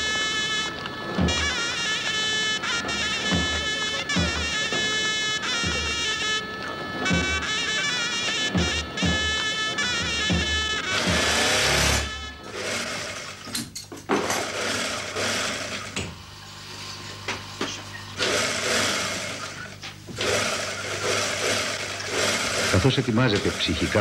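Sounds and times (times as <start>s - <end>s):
sewing machine running: 0.0s - 13.6s, 14.2s - 16.2s, 18.2s - 24.0s
steady low hum: 0.0s - 13.8s.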